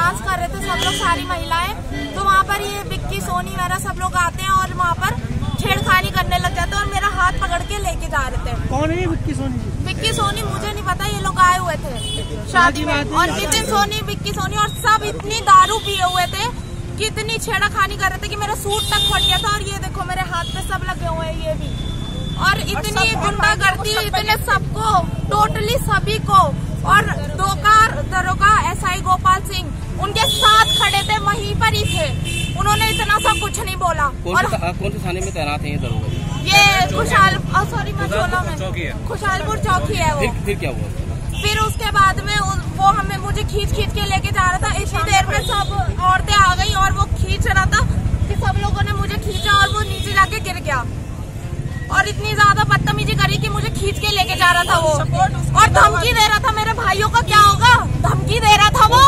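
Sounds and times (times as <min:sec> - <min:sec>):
woman speaking: 0:00.0 - 0:08.6, 0:09.8 - 0:21.7, 0:22.4 - 0:34.5, 0:36.4 - 0:40.4, 0:41.4 - 0:50.9, 0:51.9 - 0:59.0
low rumble of street traffic: 0:00.0 - 0:59.0
woman talking excitedly: 0:09.9 - 0:21.6, 0:22.4 - 0:34.5, 0:36.4 - 0:40.4, 0:41.4 - 0:50.9, 0:51.9 - 0:59.0.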